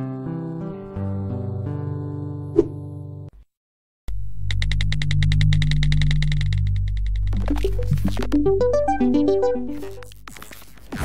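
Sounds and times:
held bass tone: 4.1s - 10.1s
electronic synthesizer music: 7.2s - 10.2s
high synthesizer notes pulsing: 7.3s - 10.2s.

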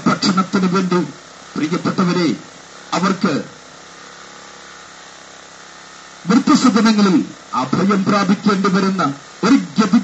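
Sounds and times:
man speaking over loudspeaker: 0.0s - 3.6s, 6.2s - 10.0s
low mechanical hum: 0.0s - 10.0s.

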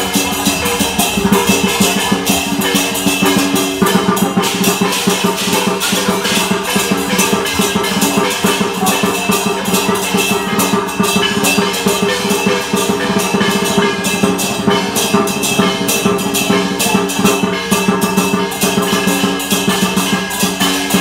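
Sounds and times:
clashing cymbals: 0.0s - 21.0s
drum beaten in fast rhythm: 0.0s - 21.0s
ringing gongs: 0.0s - 21.0s.

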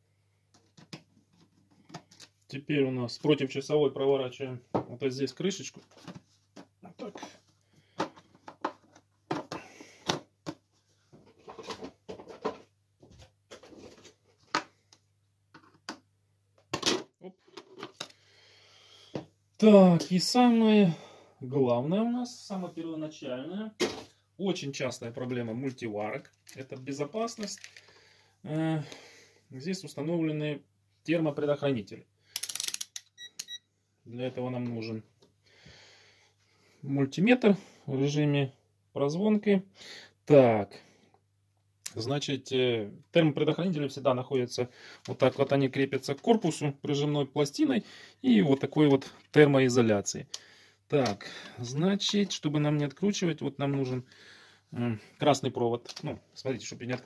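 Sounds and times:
short high meter beeps: 33.2s - 33.7s.

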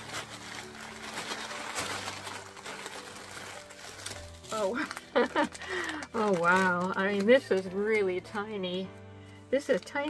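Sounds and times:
tissue paper crinkling: 0.0s - 8.7s, 9.3s - 10.0s.

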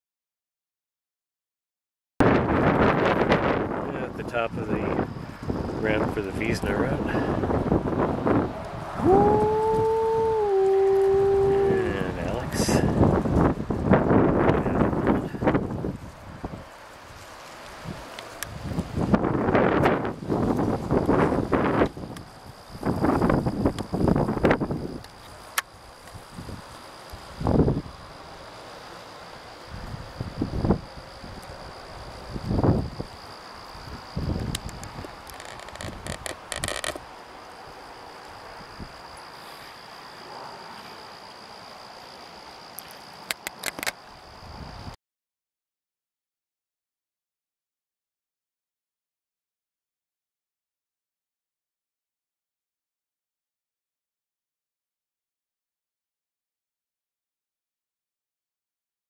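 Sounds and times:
high insect trill: 2.2s - 45.0s
person howling like a wolf: 8.9s - 12.8s.

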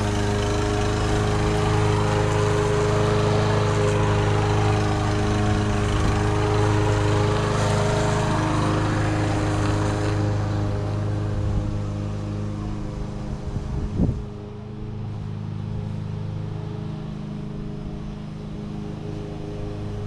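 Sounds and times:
lawn mower engine running: 0.0s - 20.0s.

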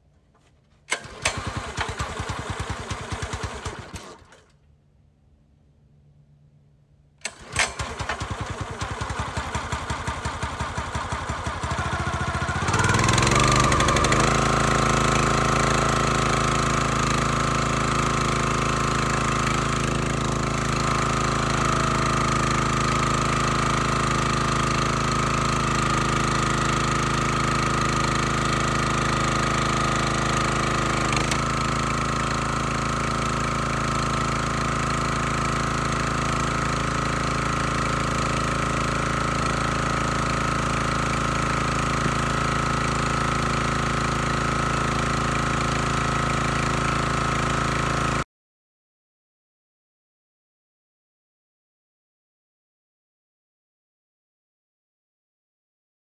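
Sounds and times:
gas engine starting and running: 0.4s - 4.7s, 7.2s - 48.2s.

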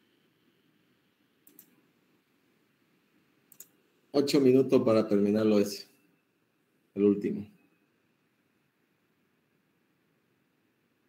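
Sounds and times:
faint computer clicks: 1.4s - 1.8s, 3.5s - 3.8s.

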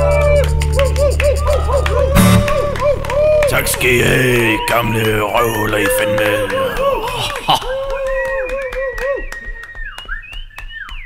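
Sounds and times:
wavering pitched tone: 0.0s - 4.7s.

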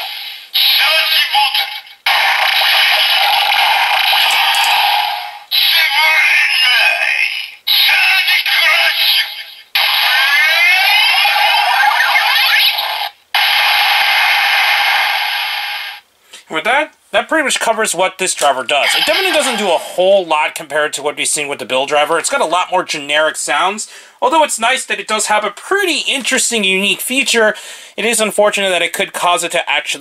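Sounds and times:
toy sound effects: 0.6s - 13.2s, 18.8s - 20.0s
announcer-style voice calls: 5.5s - 12.7s, 18.7s - 20.4s
toy electronic music: 10.1s - 12.9s, 18.8s - 19.8s.

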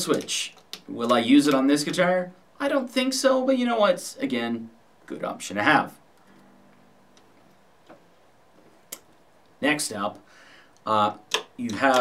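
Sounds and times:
guitar strings ringing softly: 6.2s - 7.6s.

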